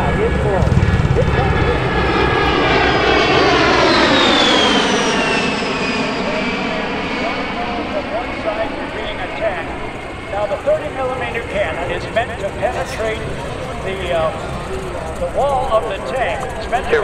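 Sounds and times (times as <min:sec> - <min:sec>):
jet engine whine on low pass: 0:00.0 - 0:17.0.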